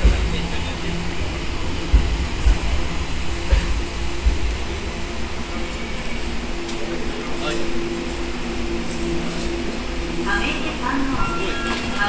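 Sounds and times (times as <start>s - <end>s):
subway train braking: 0.0s - 12.0s.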